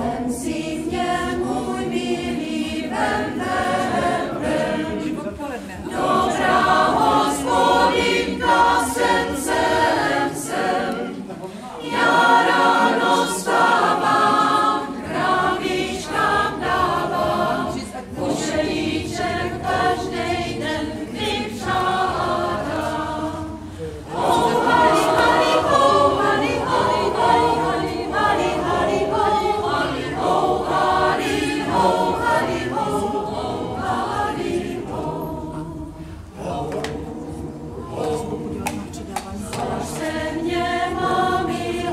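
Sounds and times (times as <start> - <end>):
mixed choir singing folk song: 0.0 - 41.9.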